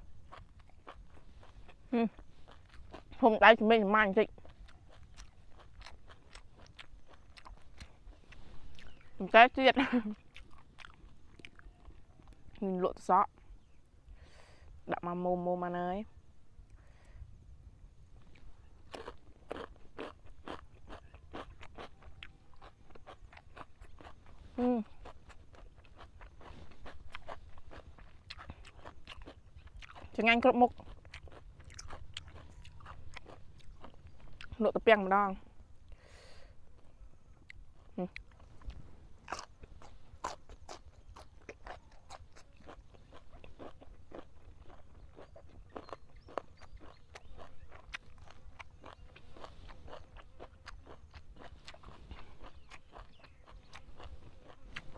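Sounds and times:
crunching of cucumber being chewed: 0.0s - 13.8s, 18.1s - 54.9s.

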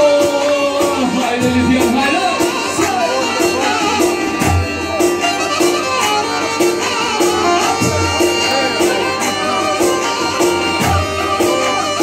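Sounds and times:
bass line: 0.0s - 12.0s
drum beat: 0.0s - 12.0s
fiddle-like melody: 0.0s - 12.0s.

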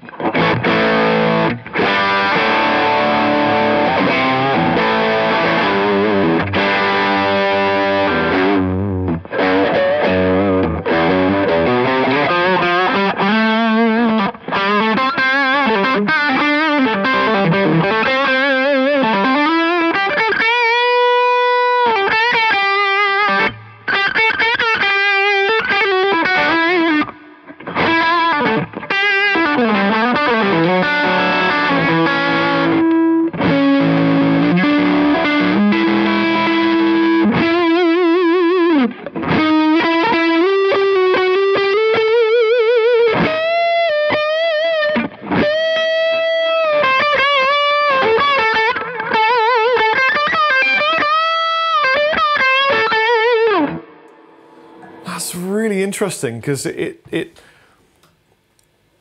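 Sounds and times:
overdriven electric guitar lead: 0.0s - 58.1s.

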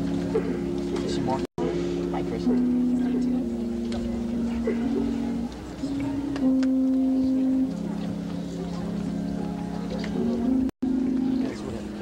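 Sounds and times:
band playing long held notes: 0.0s - 12.0s
crowd chatter: 0.0s - 12.0s.

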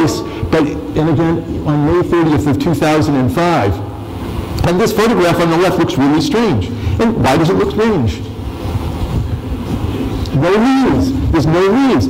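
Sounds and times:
low steady background rumble: 0.0s - 12.0s.

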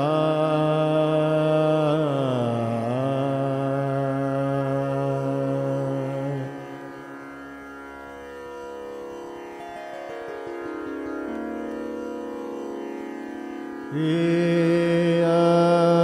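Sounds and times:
indian classical music held notes: 0.0s - 16.0s.

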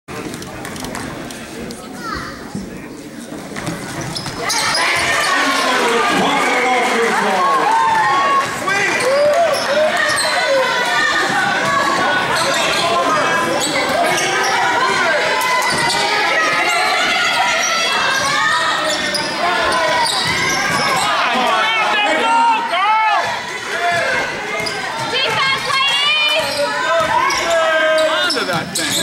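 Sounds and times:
people shouting: 4.4s - 28.4s.

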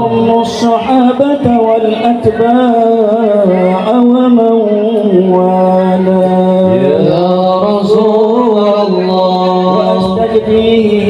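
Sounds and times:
men chanting into microphones: 0.0s - 11.0s
voice holding long note: 3.0s - 11.0s.

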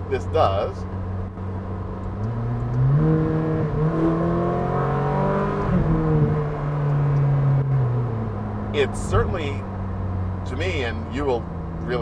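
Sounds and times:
sports car engine accelerating: 0.0s - 12.0s.

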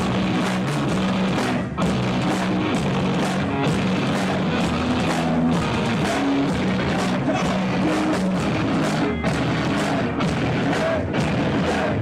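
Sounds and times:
heavy metal band playing live: 0.0s - 12.0s.

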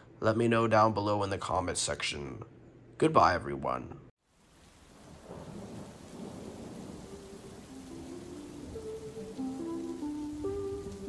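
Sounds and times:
rain: 4.2s - 11.0s
thunder rumble: 4.7s - 11.0s
held musical notes: 7.1s - 11.0s.

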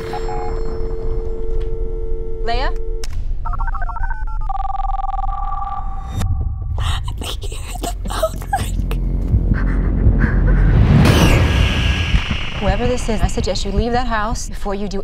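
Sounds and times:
two-note dial tone: 0.0s - 5.9s
low rumbling drone: 8.8s - 14.9s
sharp hits: 10.6s - 14.8s
rising tone sweep: 10.7s - 13.9s.

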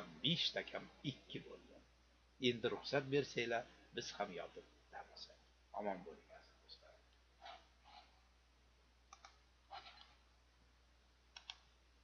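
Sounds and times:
faint low hum: 0.0s - 12.0s
faint sharp clicks: 9.1s - 9.4s.

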